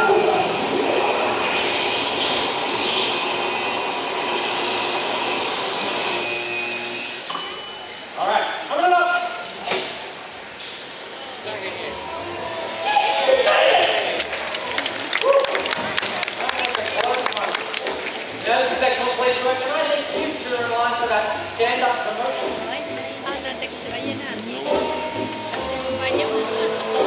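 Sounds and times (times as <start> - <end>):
voices: 16.3 - 27.0
music over sound system: 17.5 - 27.0.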